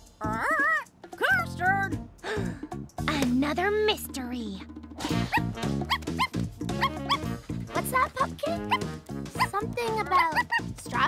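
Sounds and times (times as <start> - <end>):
background music: 0.0 - 11.0
cartoon puppy barking and yipping: 5.0 - 11.0.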